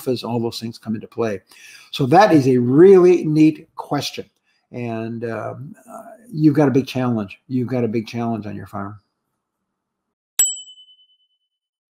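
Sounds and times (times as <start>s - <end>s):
bright ding: 10.4s - 11.3s.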